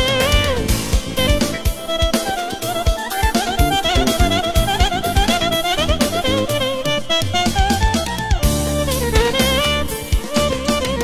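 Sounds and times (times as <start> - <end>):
bass: 0.0 - 11.0
drum beat: 0.0 - 11.0
keyboard violin-like lead melody: 0.0 - 11.0.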